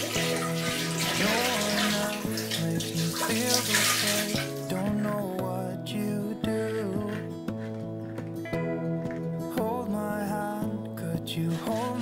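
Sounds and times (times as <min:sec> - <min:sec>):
water pouring into toilet bowl: 0:00.0 - 0:04.7
background music: 0:00.0 - 0:12.0.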